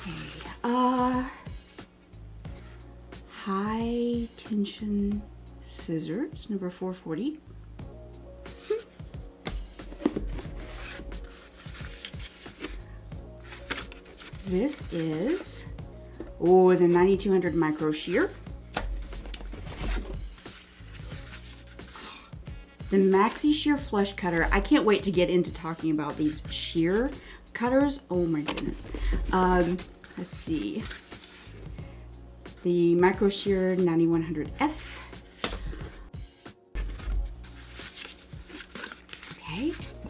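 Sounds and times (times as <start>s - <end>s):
background music: 0.0s - 40.0s
cardboard rubbing and scraping: 8.5s - 12.8s, 13.4s - 15.6s, 18.9s - 22.2s, 28.6s - 31.7s, 36.8s - 40.0s.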